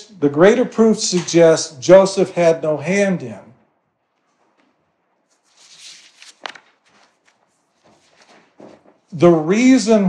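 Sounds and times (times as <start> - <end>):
soft rustles: 4.1 - 9.2.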